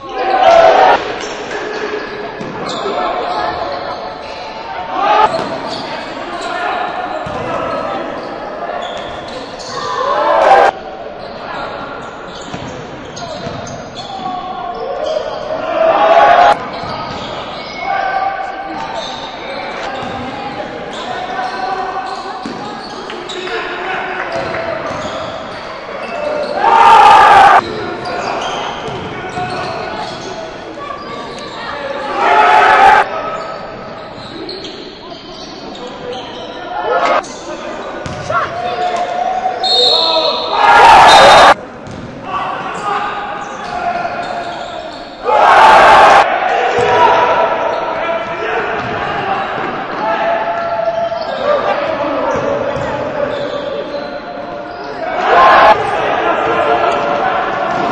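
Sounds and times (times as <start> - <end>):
players' voices: 0.0 - 57.9
basketball bouncing on court: 5.3 - 5.7, 7.2 - 7.5, 12.5 - 12.8, 13.4 - 13.8, 20.0 - 20.2, 22.4 - 22.8, 28.9 - 30.2, 38.0 - 38.4, 41.8 - 42.2, 46.8 - 47.0, 48.8 - 49.0, 57.7 - 57.9.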